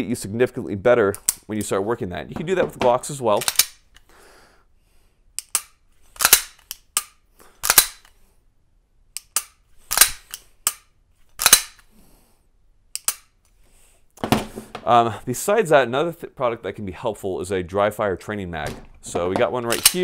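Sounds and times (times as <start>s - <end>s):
pistol trigger clicks: 5.4s - 8.1s, 9.2s - 11.9s, 12.9s - 13.4s.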